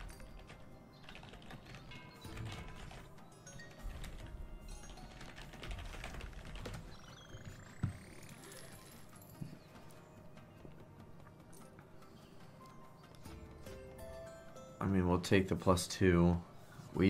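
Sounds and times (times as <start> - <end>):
quiet game music: 0.0 - 17.0.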